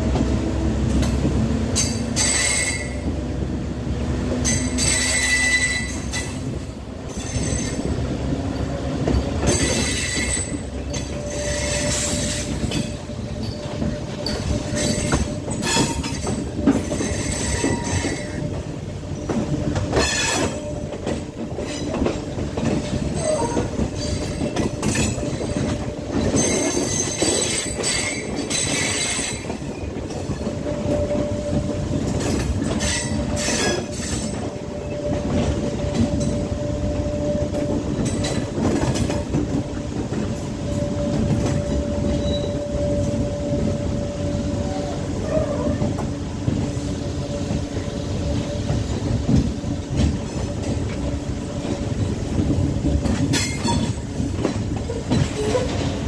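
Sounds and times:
train wheels rumbling on rails: 0.0 - 56.0
high-pitched wheel squeal: 2.2 - 3.0, 4.5 - 6.3, 17.0 - 18.4, 40.7 - 46.0.

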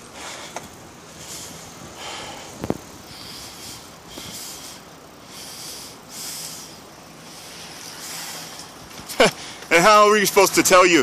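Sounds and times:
man breathing heavily: 0.0 - 9.7.

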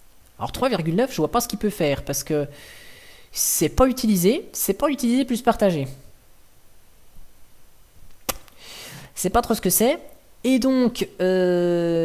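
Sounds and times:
sharp click: 8.2 - 8.6
breath drawn in: 8.5 - 9.1.

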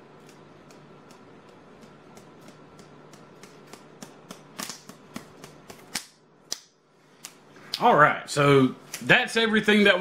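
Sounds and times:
man speaking: 7.8 - 10.0.

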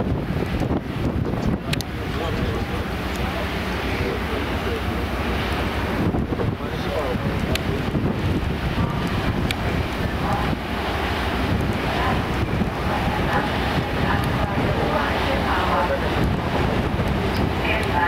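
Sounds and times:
sea: 0.0 - 18.0
ship noise: 0.0 - 18.0
wind rushing over microphone: 0.0 - 18.0.

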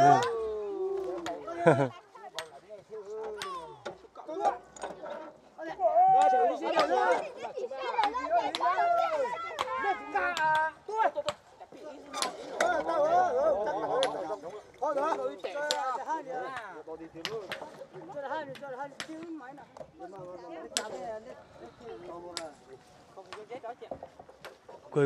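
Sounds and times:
people calling and talking: 0.0 - 25.0.

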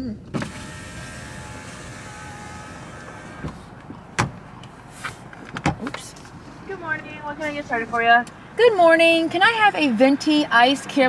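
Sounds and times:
electric window motor running: 0.3 - 3.8.

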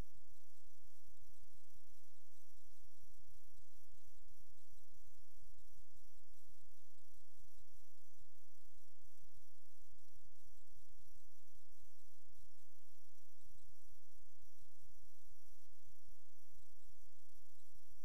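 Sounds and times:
faint high whines: 0.0 - 18.0.

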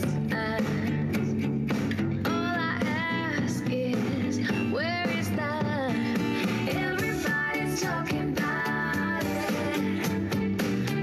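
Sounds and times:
song with singing and guitar: 0.0 - 11.0.

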